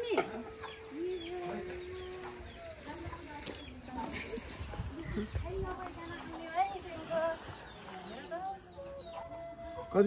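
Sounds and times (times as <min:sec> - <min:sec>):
people talking: 0:00.0 - 0:08.9.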